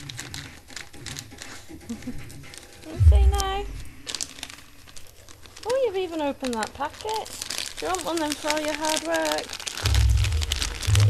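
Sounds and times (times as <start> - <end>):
wrapping paper crinkling: 0.0 - 11.0.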